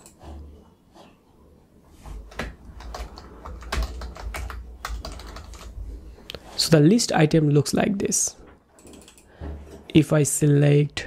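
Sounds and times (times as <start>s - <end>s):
typing on computer keyboard: 2.3s - 5.8s, 8.8s - 9.3s.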